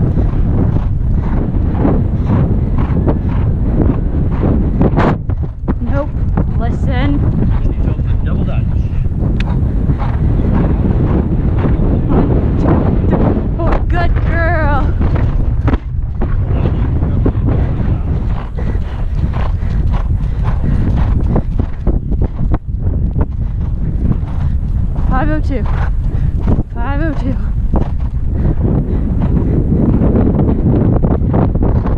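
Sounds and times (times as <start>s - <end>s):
hoofbeats on turf: 0.0s - 31.9s
wind buffeting microphone: 0.0s - 31.9s.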